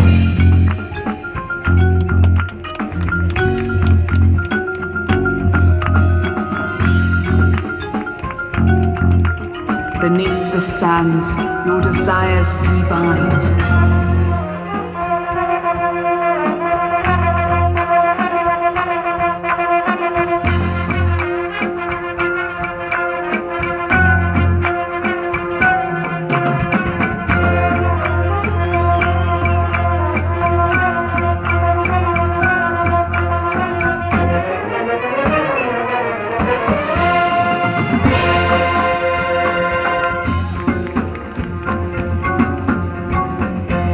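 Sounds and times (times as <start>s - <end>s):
marching band playing: 0.0s - 43.9s.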